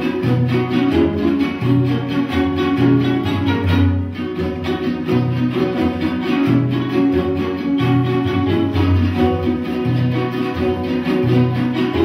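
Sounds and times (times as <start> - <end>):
strummed string chords: 0.0 - 12.0.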